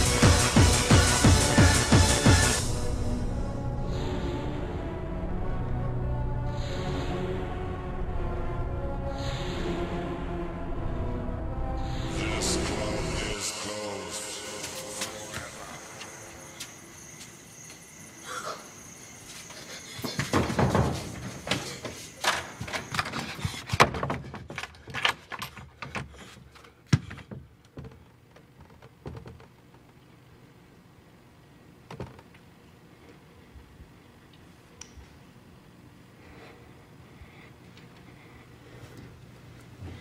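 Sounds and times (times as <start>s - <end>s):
knocks and thumps: 20.0s - 29.5s.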